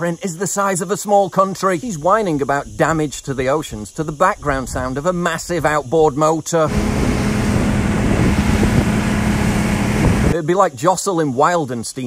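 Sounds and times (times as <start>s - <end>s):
wind buffeting microphone: 2.2s - 10.4s
outboard motor droning: 6.7s - 10.3s
rush of boat wake: 6.7s - 10.4s.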